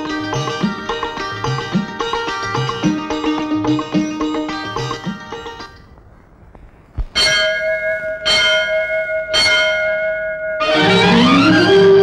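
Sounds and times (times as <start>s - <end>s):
metal temple bell ringing: 7.1s - 12.0s.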